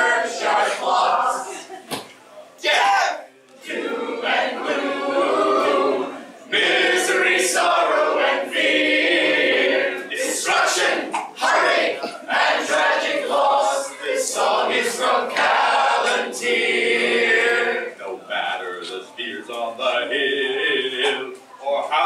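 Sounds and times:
group singing unaccompanied: 0.0s - 1.8s, 3.6s - 22.0s.

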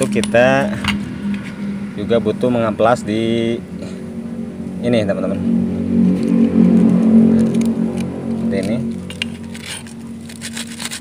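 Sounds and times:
motor drone: 0.0s - 11.0s.

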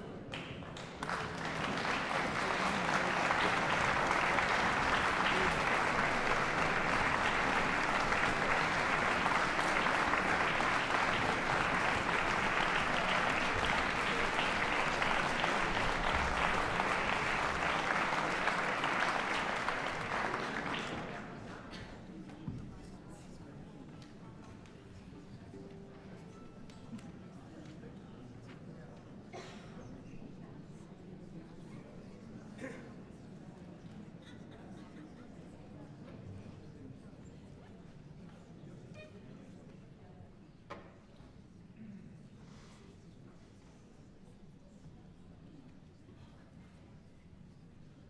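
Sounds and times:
audience applauding: 0.4s - 21.6s.

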